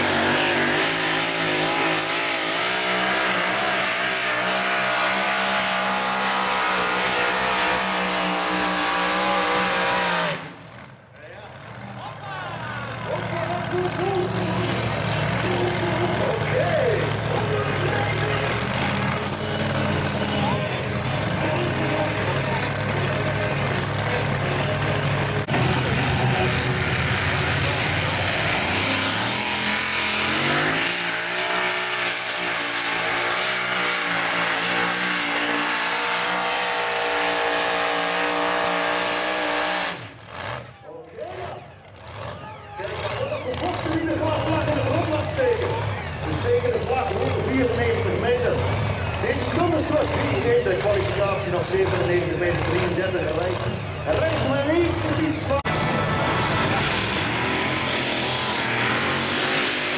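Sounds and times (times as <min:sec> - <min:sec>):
tractor engine revving: 0:00.0 - 0:59.9.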